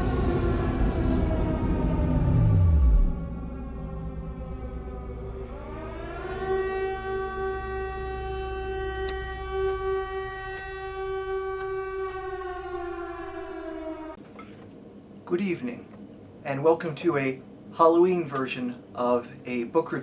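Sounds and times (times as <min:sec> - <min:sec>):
siren-like wailing tone: 0:00.0 - 0:14.2
low hum: 0:00.0 - 0:16.5.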